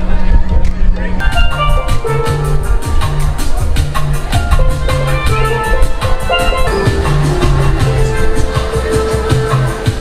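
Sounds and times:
bass line: 1.2 - 10.0
steel pan melody: 1.2 - 10.0
steady drum beat: 1.3 - 10.0.

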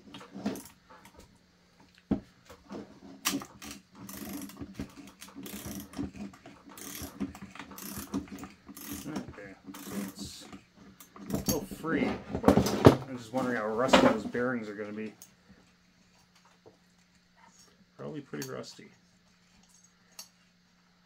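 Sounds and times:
ratchet wrench clicking: 3.6 - 4.6, 5.2 - 6.0, 6.8 - 10.2.

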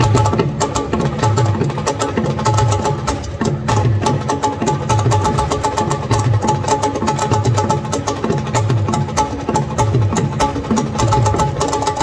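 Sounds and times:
drum ensemble playing: 0.0 - 12.0.

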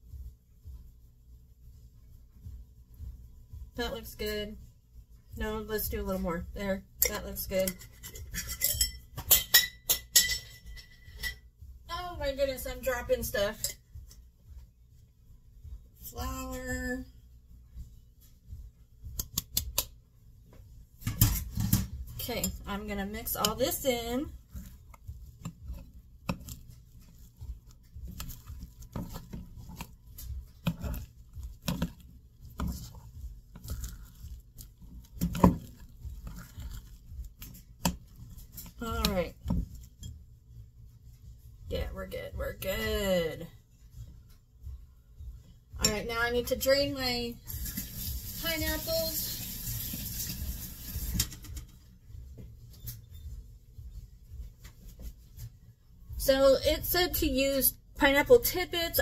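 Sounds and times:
low background hum: 0.0 - 59.0
spoon scraping batter in bowl: 7.0 - 9.0, 21.4 - 40.1.

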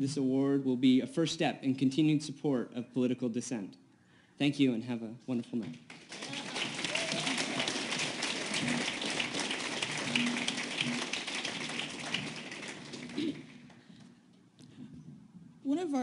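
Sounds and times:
audience applauding: 5.9 - 13.9.

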